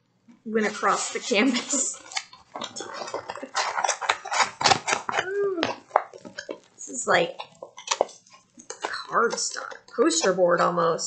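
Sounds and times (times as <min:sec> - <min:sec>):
stiff canvas crackling and clicking: 0:01.8 - 0:10.2.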